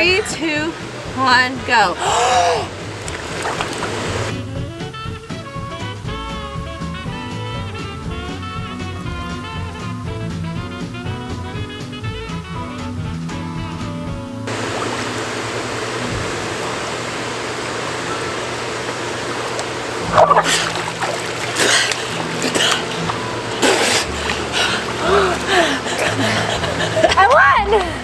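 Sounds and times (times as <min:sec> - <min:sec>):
hot tub jets rushing and bubbling: 0:00.0 - 0:04.7, 0:14.5 - 0:28.0
background music: 0:00.0 - 0:14.6, 0:20.0 - 0:28.0
person gasping: 0:02.0 - 0:02.7, 0:21.6 - 0:22.9, 0:23.6 - 0:26.9
water splashing: 0:02.8 - 0:04.3, 0:14.5 - 0:17.0, 0:19.2 - 0:27.1
breathless laughter: 0:23.6 - 0:28.0.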